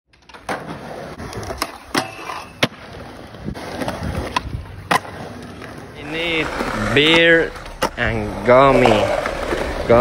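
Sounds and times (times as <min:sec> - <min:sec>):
skateboard clacking: 0:00.1 - 0:10.0
skateboard wheels rolling on concrete: 0:00.1 - 0:10.0.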